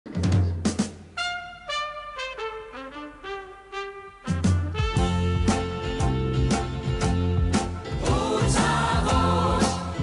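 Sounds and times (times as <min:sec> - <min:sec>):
brass melody stepping down: 0:01.1 - 0:09.3
full band hits with bass: 0:04.4 - 0:10.0.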